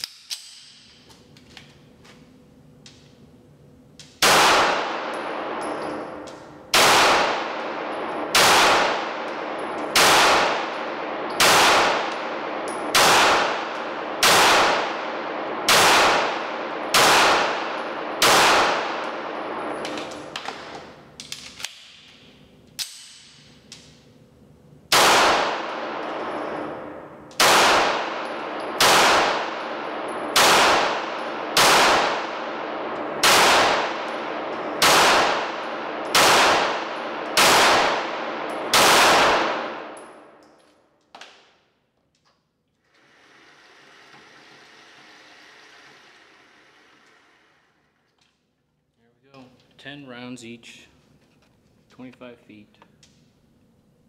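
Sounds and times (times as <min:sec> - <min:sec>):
pistol shots echoing indoors: 0:04.0 - 0:24.0, 0:24.9 - 0:41.9.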